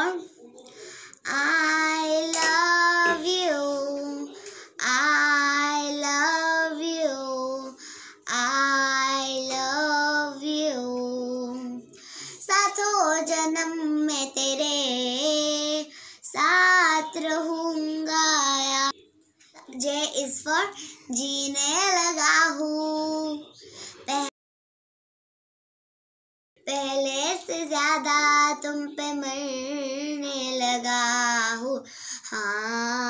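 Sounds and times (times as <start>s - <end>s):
girl singing: 0.0s - 0.3s, 1.2s - 18.9s, 19.6s - 23.5s, 26.7s - 33.0s.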